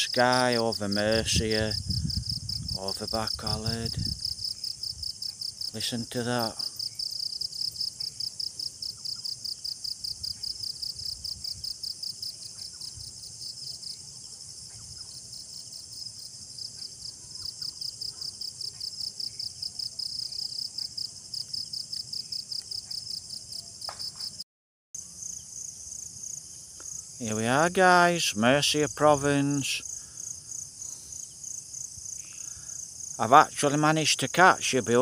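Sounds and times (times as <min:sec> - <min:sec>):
higher pulsing insect call: 0:00.0 - 0:24.4, 0:25.0 - 0:35.0
insects chirping in pulses: 0:00.0 - 0:24.4, 0:25.2 - 0:35.0.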